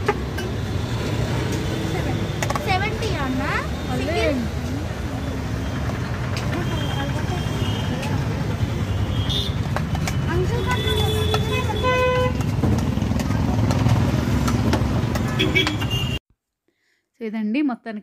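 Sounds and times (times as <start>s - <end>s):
vehicle horn tooting: 8.8s - 9.6s, 10.3s - 12.4s, 15.3s - 16.2s.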